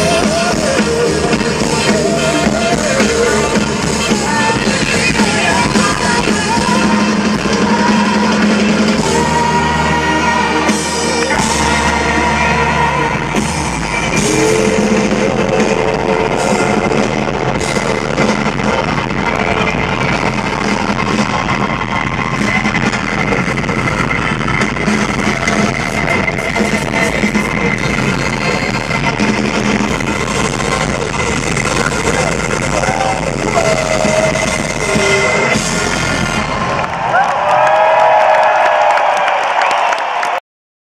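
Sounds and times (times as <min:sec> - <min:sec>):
live funk-pop band over pa: 0:00.0 - 0:40.3
crowd cheering and shouting: 0:00.0 - 0:40.4.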